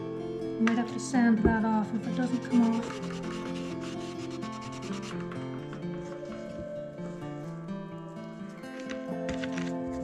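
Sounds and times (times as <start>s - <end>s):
background music: 0.0s - 10.0s
squeaky rubbing on hard surface: 2.1s - 6.6s.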